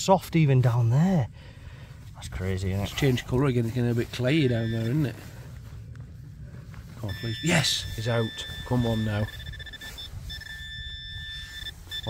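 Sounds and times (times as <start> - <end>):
pinpointer high-pitched tone: 2.9 - 5.5, 6.9 - 12.0.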